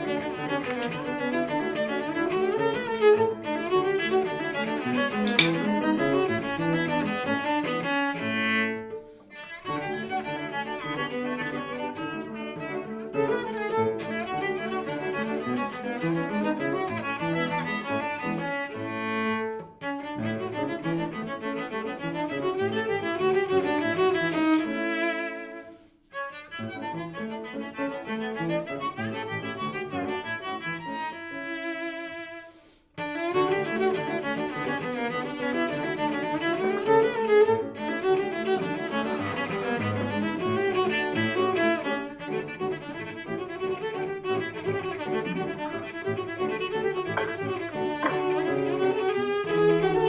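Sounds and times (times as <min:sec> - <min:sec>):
cello melody: 0:00.0 - 0:50.0
piano accompaniment: 0:44.1 - 0:50.0.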